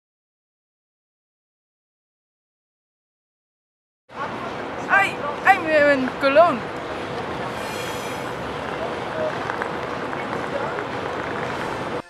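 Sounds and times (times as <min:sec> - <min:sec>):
outdoor city noise: 0:04.1 - 0:12.0
voices of passers-by: 0:04.1 - 0:12.0.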